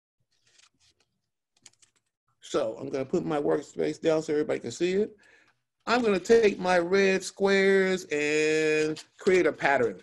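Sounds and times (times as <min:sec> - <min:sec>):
paper cut-outs clicking and rustling: 0:05.9 - 0:06.6, 0:08.4 - 0:10.0.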